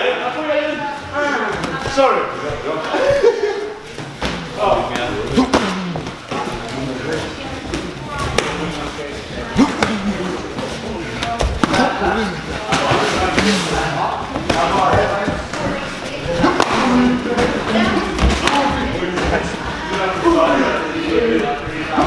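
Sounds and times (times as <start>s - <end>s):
indistinct voices: 0.7s - 22.0s.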